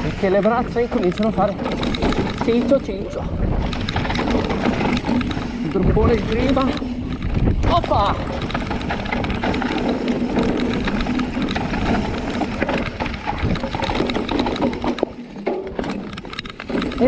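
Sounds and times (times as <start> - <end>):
bike chain and frame rattling: 0.0 - 17.0
bike tyres crunching over gravel: 0.0 - 17.0.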